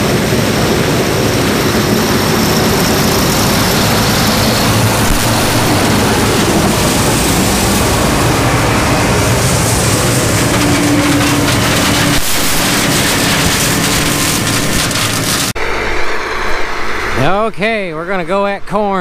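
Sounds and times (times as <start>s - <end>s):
combine harvester engine and threshing: 0.0s - 17.5s
steady machine hum: 0.0s - 19.0s.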